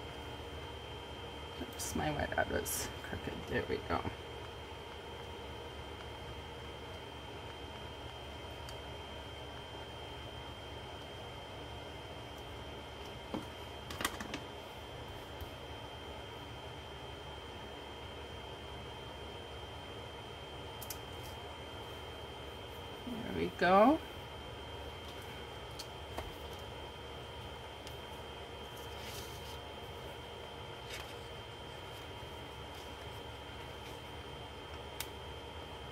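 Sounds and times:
low hum and hiss: 0:00.0 - 0:35.9.

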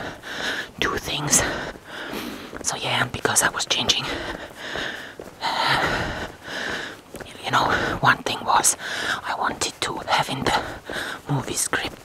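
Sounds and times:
person whispering: 0:00.7 - 0:01.7, 0:02.6 - 0:04.4, 0:07.2 - 0:12.0.

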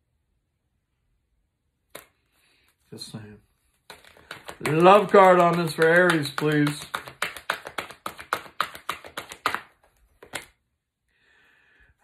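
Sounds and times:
playing cards being shuffled: 0:01.9 - 0:02.9, 0:03.6 - 0:10.6.

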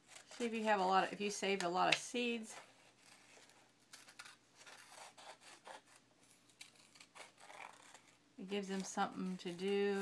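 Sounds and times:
scissors cutting thin paper: 0:02.6 - 0:10.0.

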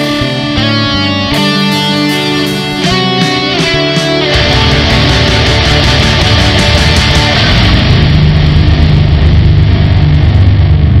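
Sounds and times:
heavy metal electric guitar and bass: 0:00.0 - 0:11.0.

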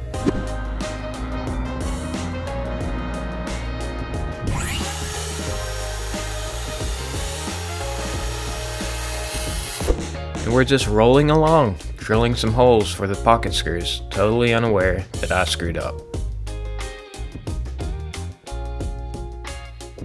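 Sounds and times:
background music with beat: 0:00.0 - 0:14.2, 0:14.8 - 0:20.0
circular saw cutting plywood: 0:00.7 - 0:10.0.

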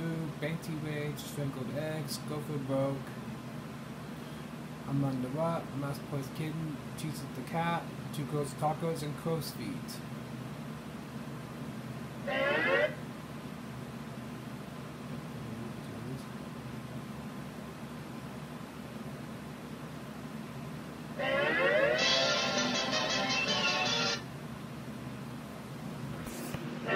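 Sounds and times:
low room hum: 0:00.0 - 0:26.9
menu music through tv speaker: 0:21.2 - 0:24.2.

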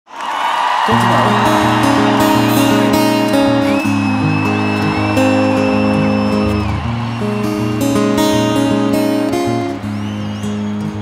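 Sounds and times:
crowd noise: 0:00.1 - 0:11.0
acoustic guitar: 0:00.9 - 0:11.0
long high whistle: 0:01.6 - 0:08.8, 0:09.8 - 0:11.0.

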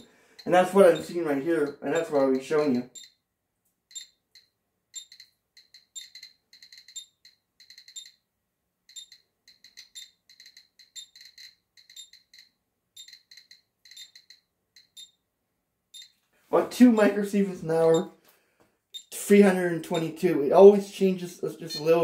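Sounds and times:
radiation meter beeping: 0:00.0 - 0:03.2, 0:03.9 - 0:08.2, 0:08.9 - 0:15.2, 0:15.9 - 0:16.2, 0:17.8 - 0:18.2, 0:18.9 - 0:20.2, 0:21.6 - 0:22.0.

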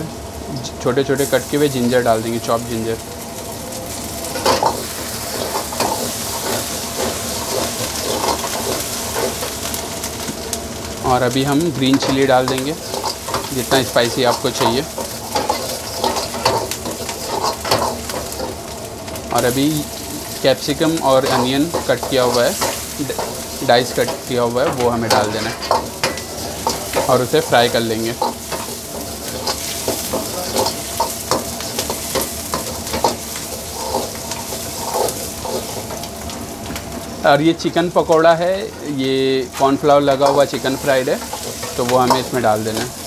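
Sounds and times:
food sizzling in hot oil: 0:00.0 - 0:43.0
metal ladle scraping a wok: 0:12.0 - 0:18.6
steel ladle scraping a pan: 0:12.0 - 0:18.6, 0:21.2 - 0:36.0.

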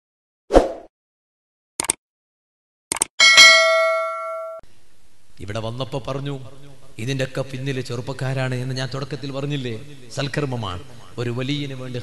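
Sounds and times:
bright bell chime: 0:03.2 - 0:04.6.

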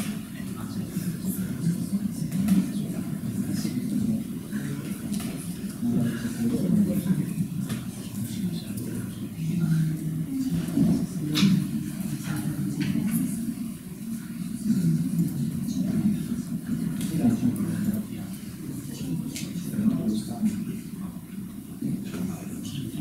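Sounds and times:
muffled voices talking: 0:00.0 - 0:23.0.

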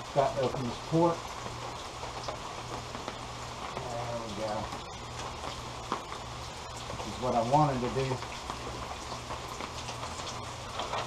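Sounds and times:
hose water flushing: 0:00.0 - 0:11.0
low steady hum: 0:00.0 - 0:11.0
rain falling: 0:00.0 - 0:11.0.

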